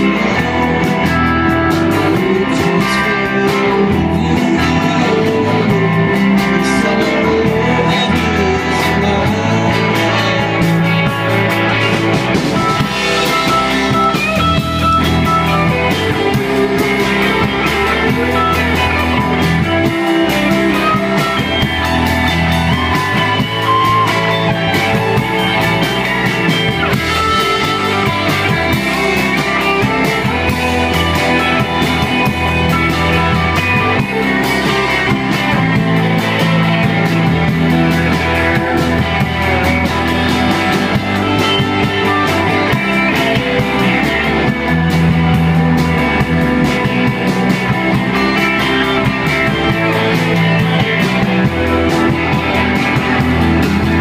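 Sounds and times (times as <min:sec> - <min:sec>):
live guitar rock music: 0:00.0 - 0:54.0.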